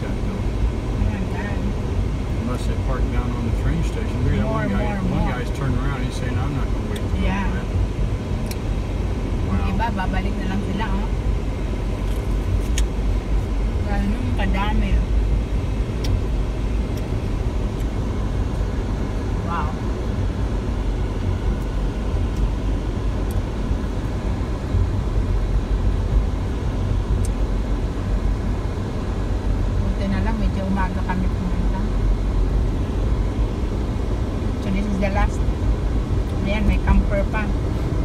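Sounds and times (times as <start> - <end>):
car interior road rumble: 0.0 - 38.0
quiet voices: 2.5 - 6.7.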